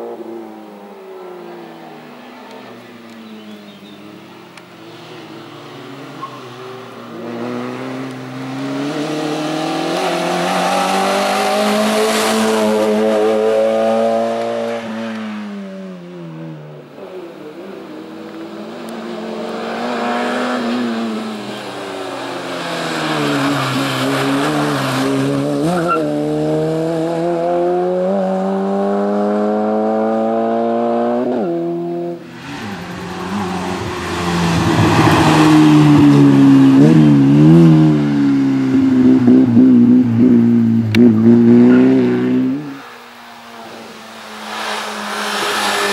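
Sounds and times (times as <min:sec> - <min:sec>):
race car engine revving: 0:05.1 - 0:15.4, 0:17.3 - 0:45.9
tyre squeal: 0:06.1 - 0:06.7, 0:25.7 - 0:26.1.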